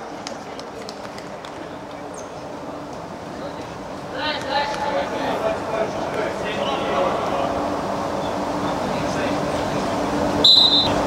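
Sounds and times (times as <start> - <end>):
murmur of voices: 0.0 - 10.8
referee's whistle blast: 10.4 - 11.0.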